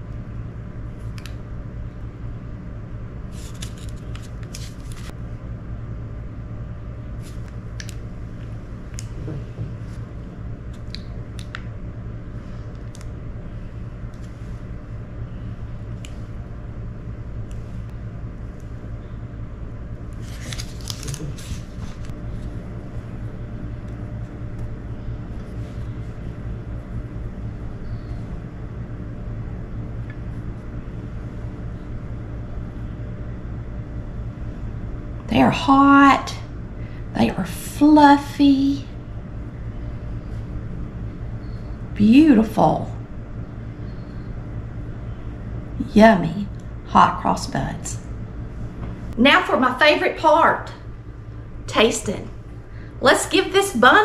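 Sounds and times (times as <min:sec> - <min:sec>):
steady low hum: 0:00.0 - 0:54.0
plastic piping bag rustling: 0:20.2 - 0:22.5.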